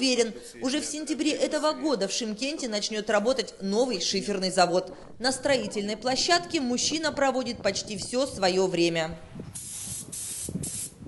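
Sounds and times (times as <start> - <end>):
spray gun hissing: 9.6 - 11.0.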